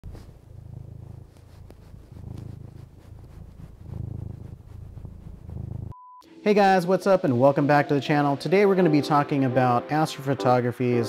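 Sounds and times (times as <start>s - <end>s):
cat purring: 0.0s - 6.0s.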